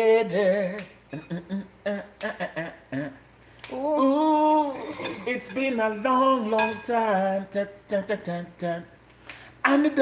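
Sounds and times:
person humming a tune: 0:00.3 - 0:05.4.

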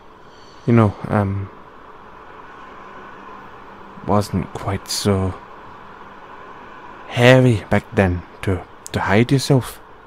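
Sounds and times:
background hiss: 0:00.0 - 0:10.0
faint hum: 0:00.0 - 0:10.0.

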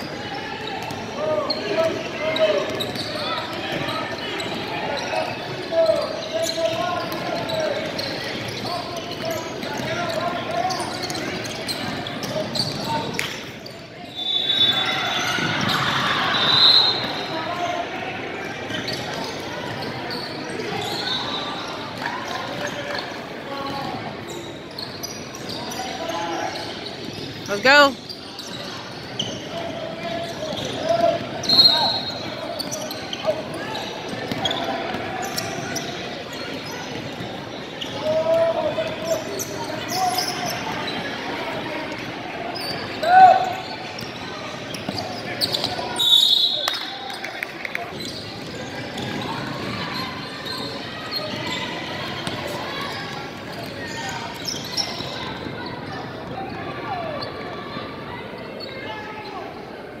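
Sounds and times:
crowd hubbub talking and calling: 0:00.0 - 1:00.0.

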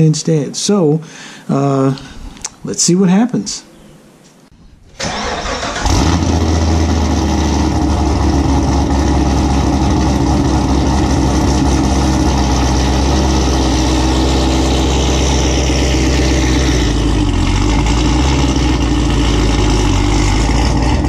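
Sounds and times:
car engine starting and idling: 0:04.9 - 0:21.0.

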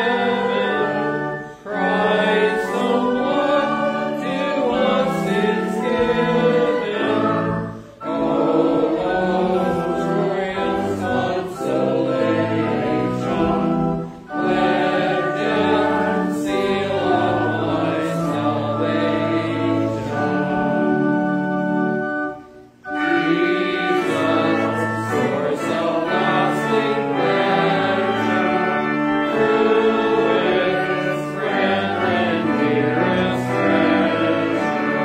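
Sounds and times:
hymn accompaniment: 0:00.0 - 0:35.0
voices singing a hymn: 0:00.0 - 0:35.0.

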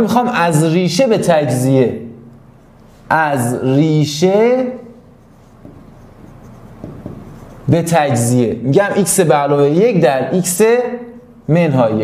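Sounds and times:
pen scratching writing strokes: 0:05.1 - 0:08.3.

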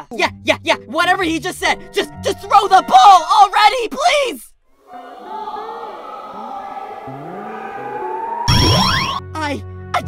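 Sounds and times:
rising synth sweeps: 0:04.8 - 0:09.3
rising synthesizer tone: 0:04.9 - 0:09.3.

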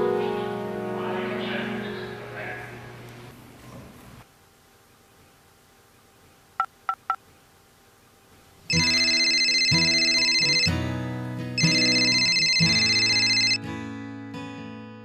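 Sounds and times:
musical phone ringtone: 0:08.7 - 0:10.9, 0:11.6 - 0:13.6
phone keypad beeps: 0:11.6 - 0:13.6.

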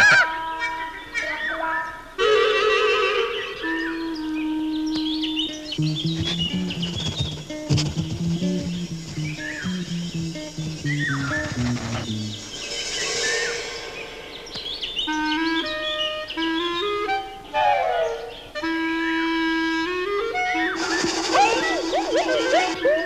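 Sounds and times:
bird calls chirping: 0:00.0 - 0:02.2, 0:02.9 - 0:23.0
cartoon woodwind music: 0:02.2 - 0:12.4, 0:15.1 - 0:23.0
low melody of short notes: 0:04.4 - 0:12.5.

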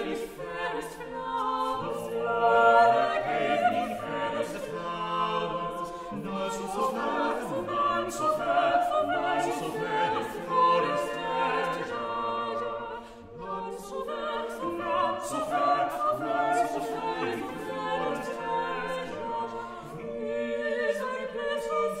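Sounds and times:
vocal ensemble singing madrigal: 0:00.0 - 0:22.0.

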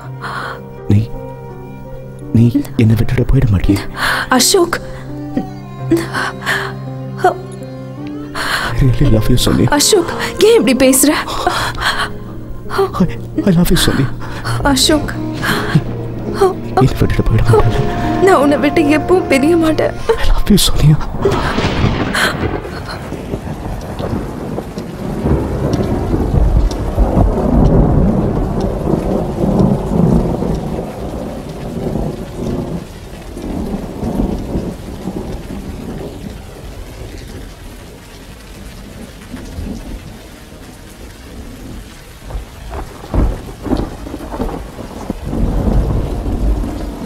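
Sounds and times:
steady rain: 0:00.0 - 0:47.0
rolling thunder: 0:08.4 - 0:47.0
sharp thunder cracks: 0:13.5 - 0:37.4, 0:41.6 - 0:47.0.

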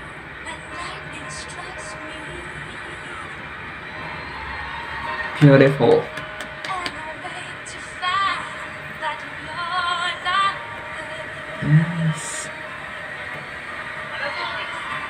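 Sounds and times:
woman singing with vibrato: 0:00.0 - 0:03.5, 0:06.6 - 0:12.8, 0:14.0 - 0:15.0
low male voice: 0:11.6 - 0:12.6.

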